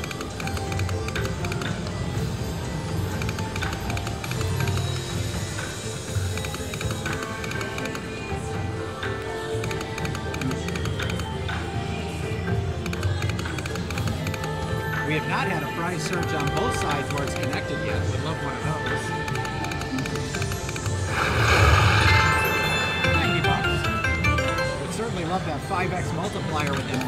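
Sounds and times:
slot machine game music: 0:00.0 - 0:11.5, 0:15.0 - 0:27.0.

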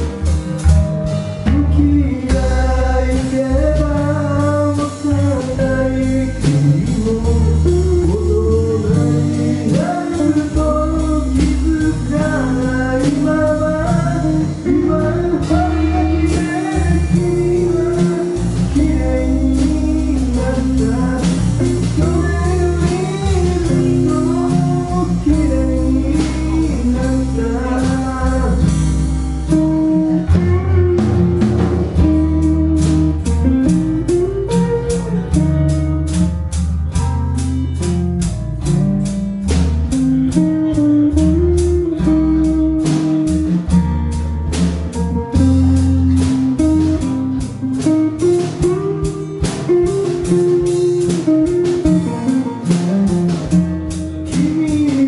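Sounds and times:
drum kit beat: 0:00.0 - 0:55.0
electric bass line: 0:00.0 - 0:55.0
guitar melody: 0:00.0 - 0:55.0
strummed acoustic guitar: 0:00.0 - 0:55.0.

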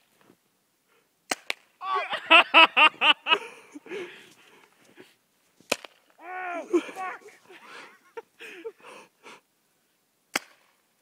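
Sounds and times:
man laughing: 0:01.8 - 0:04.2, 0:06.2 - 0:09.0.

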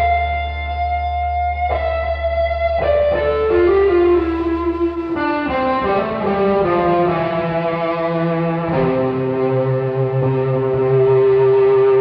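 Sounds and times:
electric guitar sustained notes: 0:00.0 - 0:12.0
band playing: 0:03.5 - 0:12.0.

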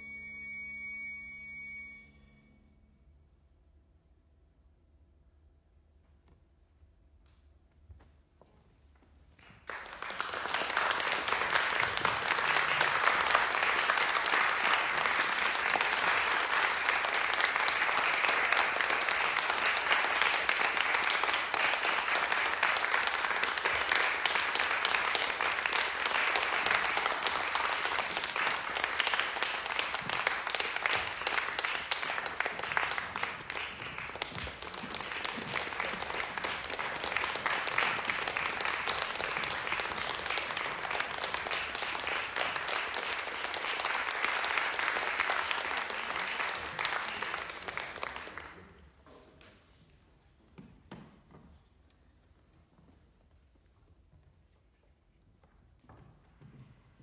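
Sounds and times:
audience applauding: 0:09.4 - 0:48.8.

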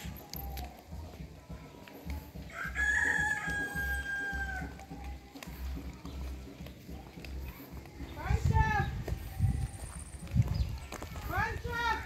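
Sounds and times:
rooster crowing: 0:02.5 - 0:04.7.

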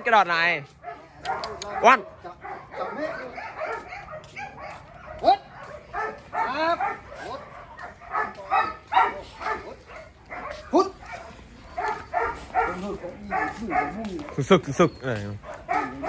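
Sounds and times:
dogs barking and yipping: 0:00.0 - 0:16.0.

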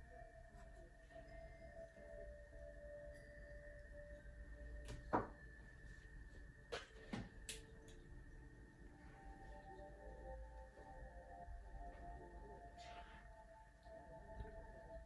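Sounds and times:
faint two-tone whine: 0:00.0 - 0:15.0.

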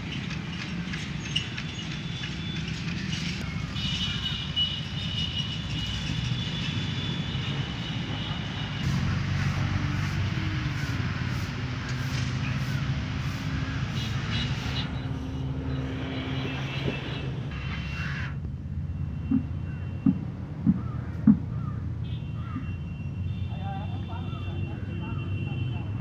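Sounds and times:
low engine rumble: 0:08.8 - 0:13.9, 0:16.9 - 0:22.8.

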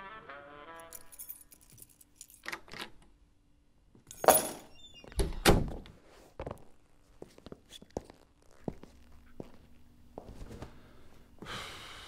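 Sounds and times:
light metallic jingling: 0:00.8 - 0:02.5, 0:04.1 - 0:04.8.

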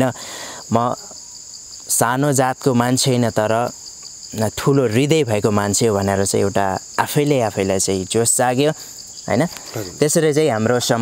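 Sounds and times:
insects chirring: 0:00.0 - 0:11.0
man breathing: 0:00.2 - 0:00.7
man speaking: 0:09.7 - 0:10.2.

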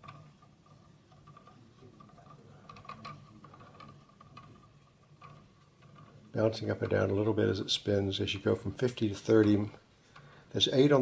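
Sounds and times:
magnet rotor ticking: 0:00.0 - 0:11.0.

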